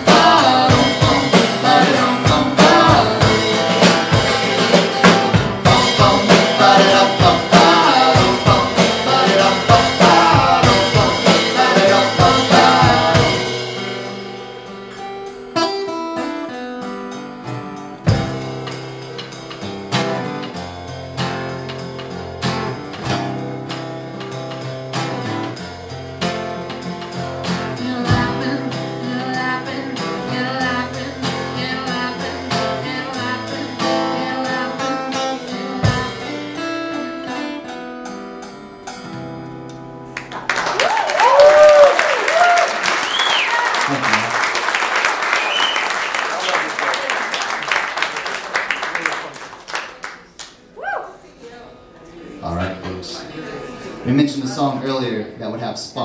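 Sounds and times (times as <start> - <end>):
bucket drums and cymbals: 0.0 - 16.4, 17.8 - 36.4
acoustic-electric guitar: 0.0 - 56.0
audience applauding and cheering: 40.1 - 51.1
audience whoops: 40.4 - 47.4, 50.8 - 51.2.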